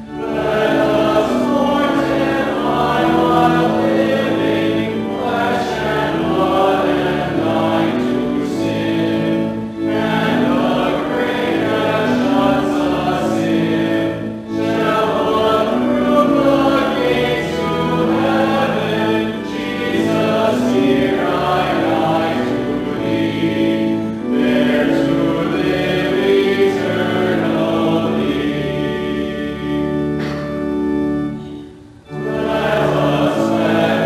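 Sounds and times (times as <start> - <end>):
group singing a hymn: 0.0 - 31.4, 32.0 - 34.0.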